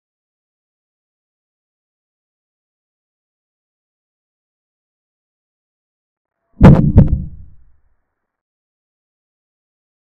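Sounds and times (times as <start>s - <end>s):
sharp wooden knocks: 6.6s - 7.5s.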